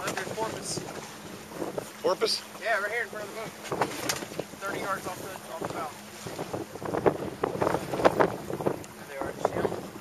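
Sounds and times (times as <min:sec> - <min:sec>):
water splashing against boat hull: 0:00.0 - 0:10.0
wind buffeting microphone: 0:00.0 - 0:10.0.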